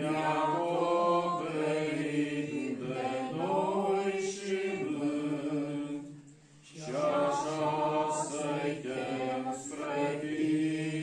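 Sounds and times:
men singing a hymn unaccompanied: 0:00.0 - 0:11.0.

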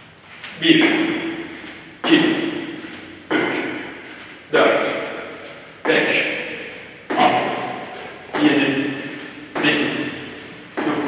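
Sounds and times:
landings on gym floor echoing: 0:00.6 - 0:11.0.

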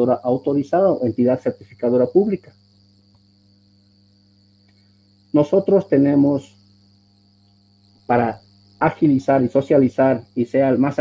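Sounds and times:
high-pitched whine: 0:00.0 - 0:11.0
low electrical hum: 0:00.0 - 0:11.0.

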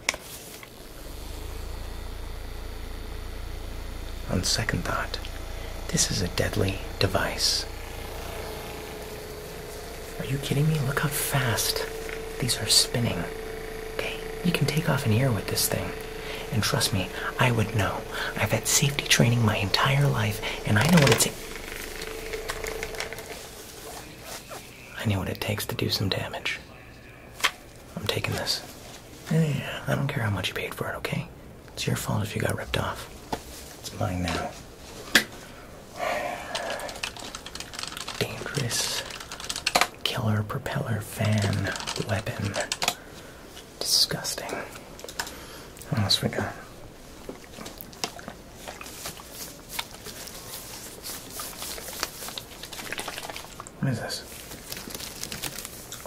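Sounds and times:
small fan motor whirring: 0:00.0 - 0:24.8, 0:35.4 - 0:39.9.

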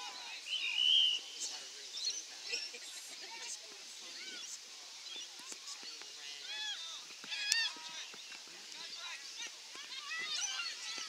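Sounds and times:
players and spectators calling out: 0:08.8 - 0:11.0
shrill shout: 0:09.8 - 0:11.0.

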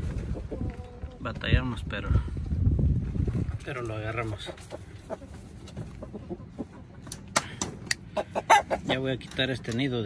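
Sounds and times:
chickens clucking: 0:00.0 - 0:01.4, 0:03.8 - 0:09.6.

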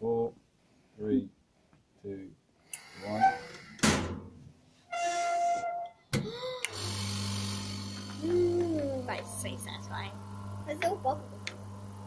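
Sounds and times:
vacuum pump humming: 0:06.7 - 0:12.0.

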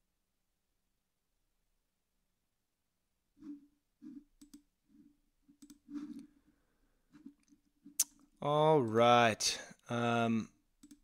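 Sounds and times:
computer mouse clicks: 0:04.0 - 0:04.7, 0:05.5 - 0:06.3, 0:10.8 - 0:11.0.

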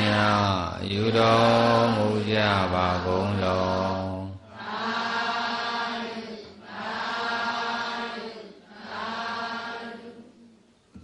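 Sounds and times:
group chanting in unison: 0:00.0 - 0:10.5.

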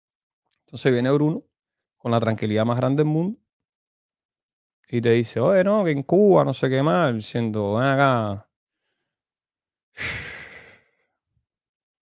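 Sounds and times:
man sighing: 0:10.0 - 0:11.0.

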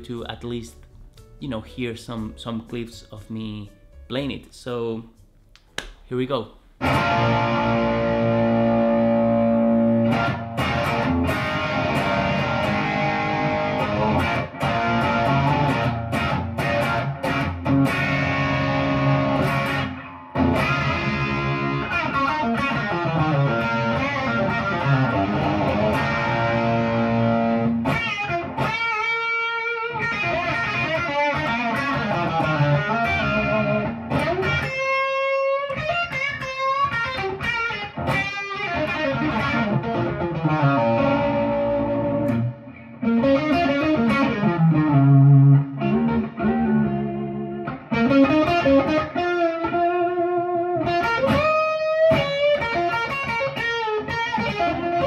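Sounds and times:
electric guitar lead playing: 0:06.8 - 0:55.0.

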